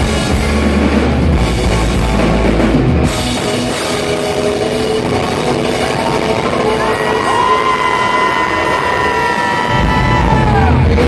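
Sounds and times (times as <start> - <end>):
rock band with drums: 0.0 - 11.0
crowd cheering and yelling: 5.0 - 11.0.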